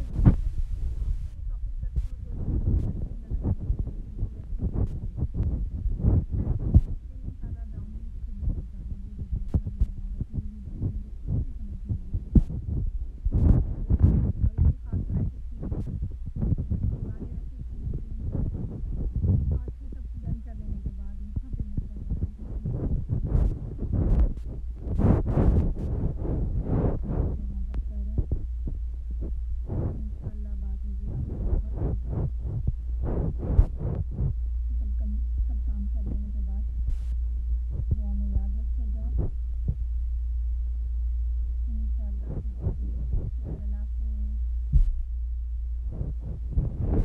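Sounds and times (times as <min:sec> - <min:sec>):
low thumps and knocks: 0:00.0 - 0:34.4, 0:44.7 - 0:45.2, 0:45.8 - 0:47.0
steady low hum: 0:00.0 - 0:47.0.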